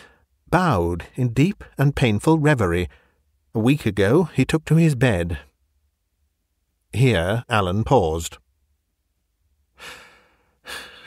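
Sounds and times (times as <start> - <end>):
man breathing: 0.0 - 0.4, 2.9 - 3.3, 9.7 - 11.0.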